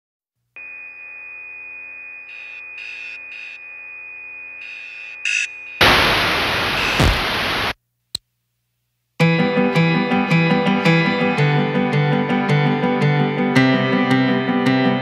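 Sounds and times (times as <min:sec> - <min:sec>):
steady high electronic tone: 0:00.6 - 0:07.7
static bursts: 0:04.6 - 0:07.8.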